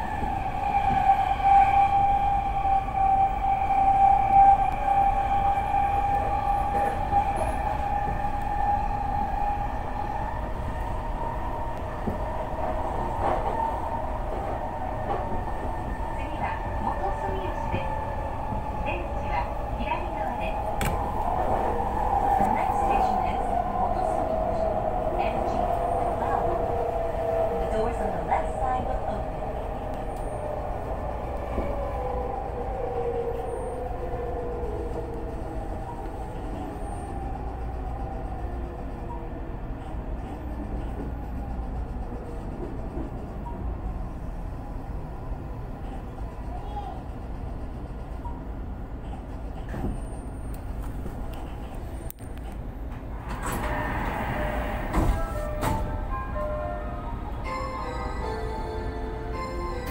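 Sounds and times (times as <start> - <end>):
wheels rumbling on rail: 0.0 - 59.9.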